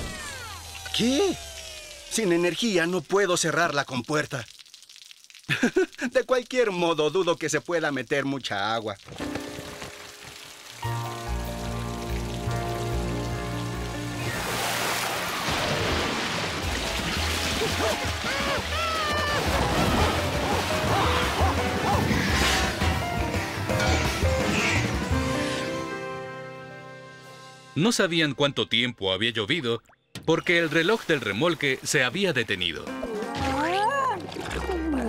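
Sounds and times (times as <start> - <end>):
flooding water and rain rushing: 9.1 - 23.7
background music with held chords: 10.8 - 15.0, 19.6 - 28.7.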